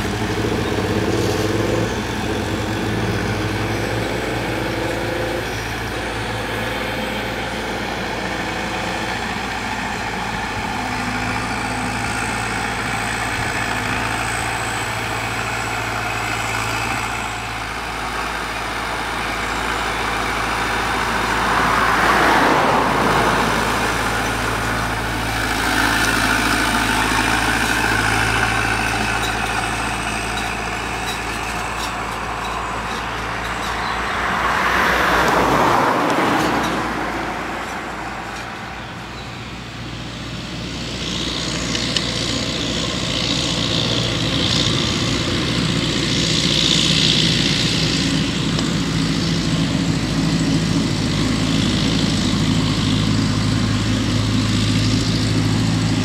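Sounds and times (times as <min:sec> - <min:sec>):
distant diesel engine running: 0:00.0 - 0:56.0.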